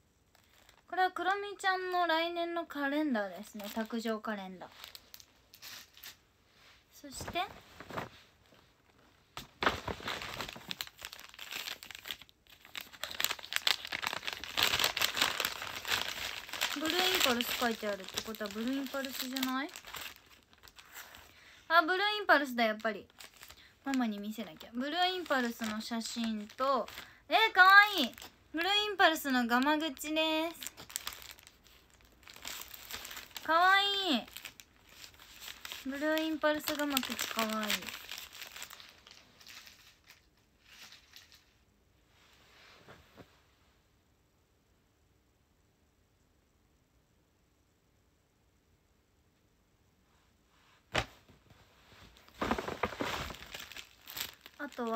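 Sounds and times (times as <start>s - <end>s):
gift wrapping paper crinkling: 0.3s - 0.9s, 3.5s - 6.2s, 9.4s - 41.6s, 51.9s - 54.9s.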